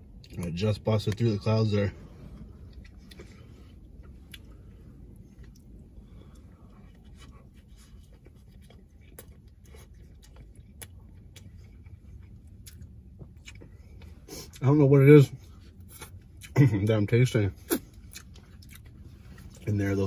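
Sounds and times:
low steady rumble: 0.0 - 20.0
man chewing: 2.3 - 14.6, 15.4 - 16.6, 17.5 - 19.7.

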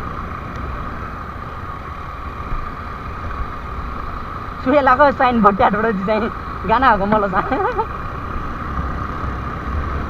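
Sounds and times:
motorcycle engine drone: 0.0 - 10.0.

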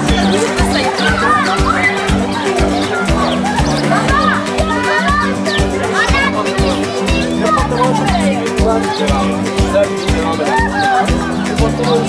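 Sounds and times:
high voices singing: 0.0 - 12.0
music with steady beat: 0.0 - 12.0.

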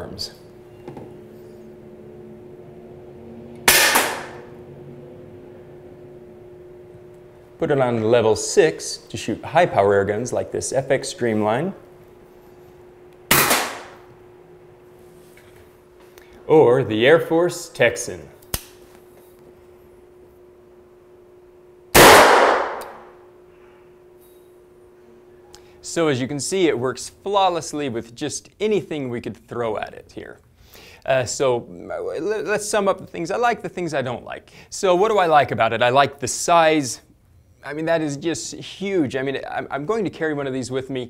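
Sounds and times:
steady low hum: 0.0 - 41.0
air rifle shot crack: 3.7 - 4.4, 13.3 - 14.0, 22.0 - 23.1.

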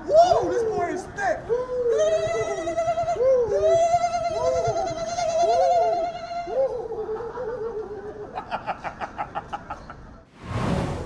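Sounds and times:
man holding wavering high ooo: 1.5 - 7.9.

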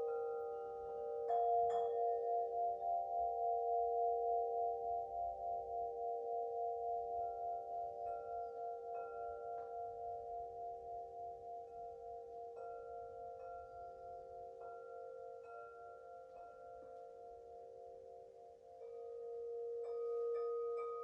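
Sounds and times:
singing bowl ringing: 0.0 - 21.0.

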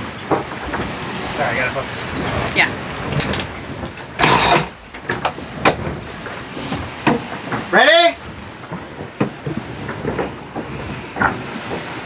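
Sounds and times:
rush of wind and water: 0.0 - 12.0.

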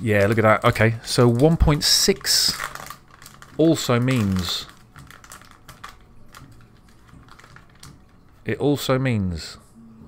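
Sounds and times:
wrapper crinkling and clicking: 0.0 - 8.5.

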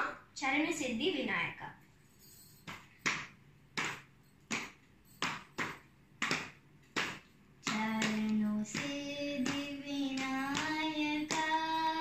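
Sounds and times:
hand claps: 2.6 - 12.0.

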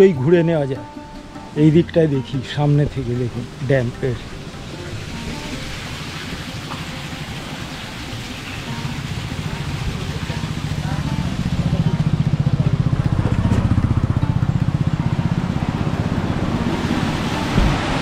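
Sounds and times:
small engine running: 4.5 - 17.4.

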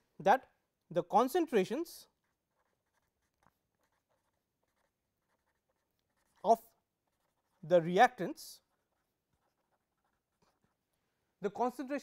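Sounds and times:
pen scratching on paper: 1.1 - 11.0.

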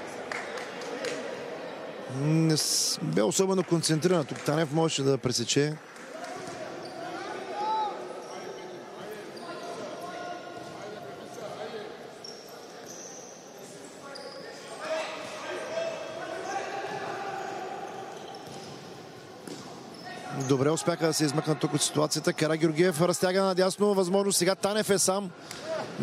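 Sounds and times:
voices and shouts echoing: 0.0 - 26.0.

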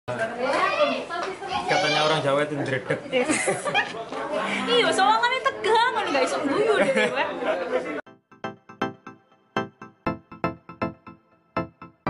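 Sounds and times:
lively voices talking: 0.2 - 8.1.

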